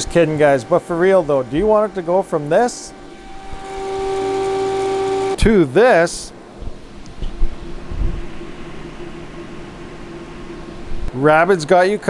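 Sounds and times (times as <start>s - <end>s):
cooling fans whining and hissing: 0.0s - 12.0s.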